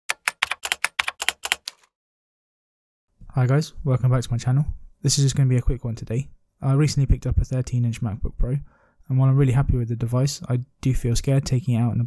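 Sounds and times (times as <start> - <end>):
keyboard key clicks: 0.1 - 1.9.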